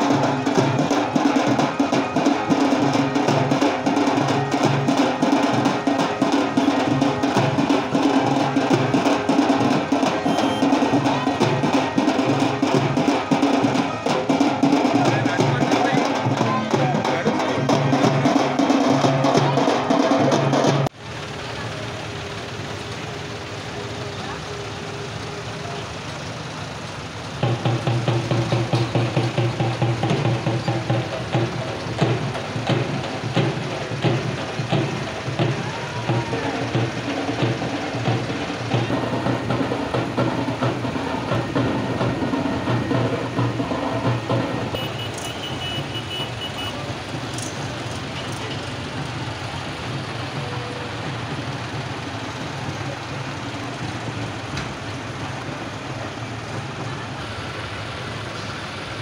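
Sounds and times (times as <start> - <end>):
song with fast beat: 0.0 - 21.0, 27.4 - 54.3
tractor engines running: 0.0 - 59.0.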